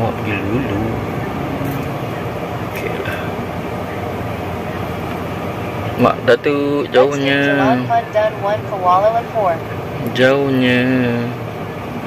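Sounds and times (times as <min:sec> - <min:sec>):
car engine hum inside cabin: 0:00.0 - 0:12.0.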